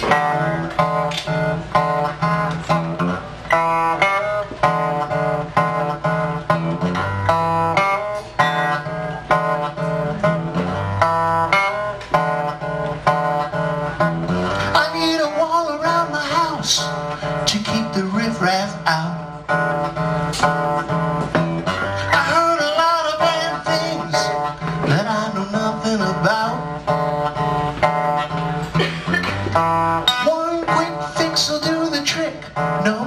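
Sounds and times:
acoustic guitar strumming: 0.0 - 33.0
man singing: 14.6 - 20.0, 21.8 - 27.2, 30.0 - 33.0.

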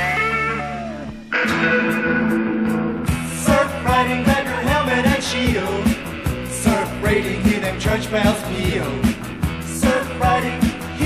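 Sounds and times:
rock music with electric guitar: 0.0 - 11.0.

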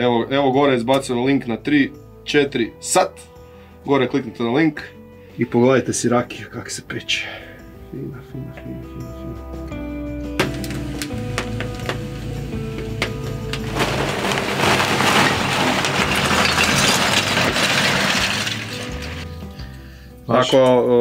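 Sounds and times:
background music: 0.0 - 21.0
fire cracking: 10.4 - 19.7
paper rustling and crumpling: 13.0 - 19.4.

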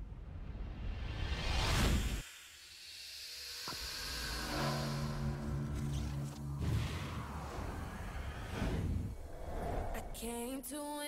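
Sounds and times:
high hiss: 1.6 - 5.7
low held synth chord: 4.2 - 6.6.

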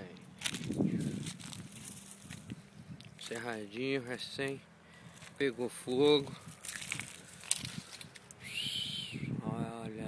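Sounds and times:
bird whistled call: 8.4 - 9.4.

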